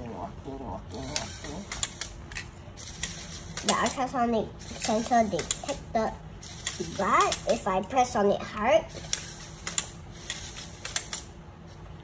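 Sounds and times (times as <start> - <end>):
toy motor humming: 0.9 - 11.9
sharp plastic clicks: 1.1 - 4.0, 4.6 - 5.8, 6.5 - 7.7, 8.9 - 11.3.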